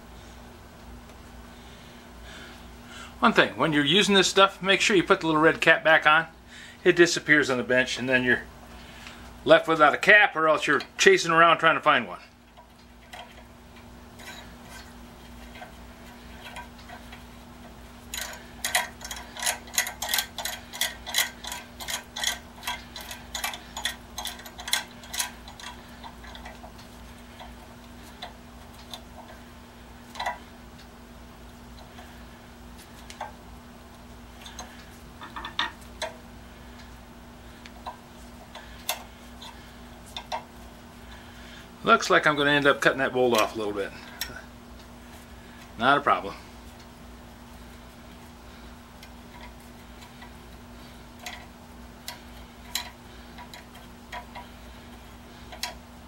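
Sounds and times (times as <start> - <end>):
steady low hum: 0.0 - 56.0
metal bolt parts clicking: 18.1 - 27.5, 30.1 - 30.4, 51.2 - 54.5, 55.4 - 55.8.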